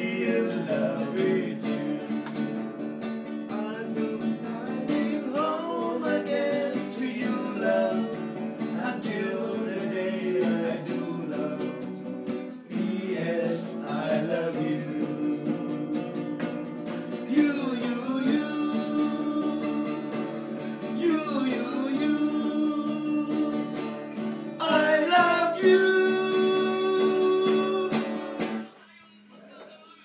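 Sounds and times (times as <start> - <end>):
men singing together: 0.0 - 2.2, 3.5 - 12.1, 12.7 - 23.8, 24.6 - 28.2
strummed acoustic guitar: 0.0 - 29.0.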